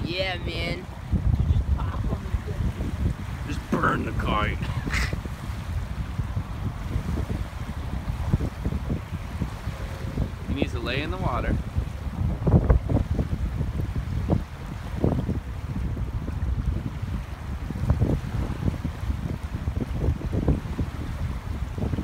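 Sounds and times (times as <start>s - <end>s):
small waves lapping: 0.0s - 22.0s
wind buffeting microphone: 0.0s - 22.0s.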